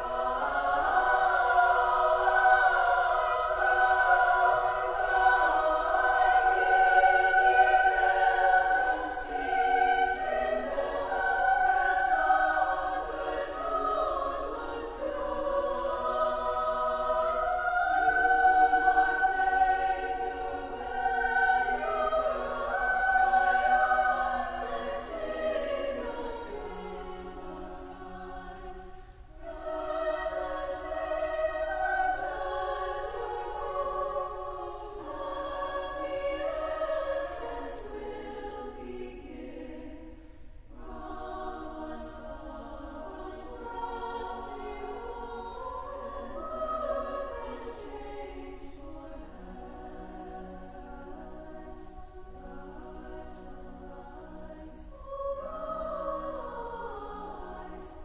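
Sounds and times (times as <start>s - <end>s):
women's choir singing: 0.0s - 58.0s.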